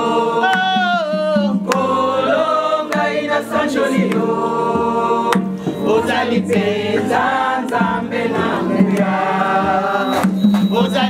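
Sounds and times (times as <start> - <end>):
women singing in chorus: 0.0 - 0.9, 1.6 - 11.0
sharp percussive hits: 8.8 - 11.0.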